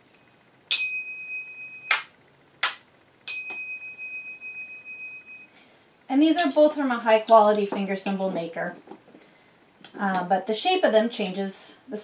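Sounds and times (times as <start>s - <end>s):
finger cymbals ringing: 0.1s - 5.7s.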